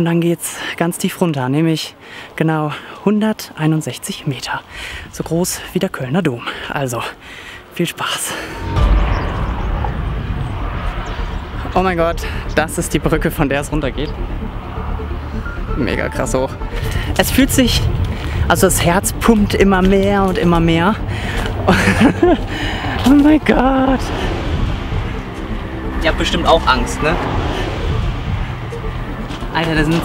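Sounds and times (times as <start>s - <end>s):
low outdoor rumble: 8.4s - 30.0s.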